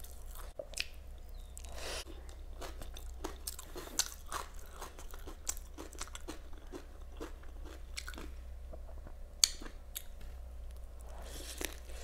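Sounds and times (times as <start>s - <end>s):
close chewing with crunches: 0.0s - 8.4s, 11.2s - 12.0s.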